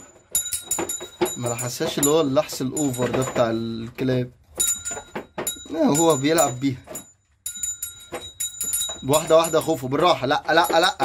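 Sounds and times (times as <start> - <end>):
leash clip and buckle jingling: 0.0 - 11.0.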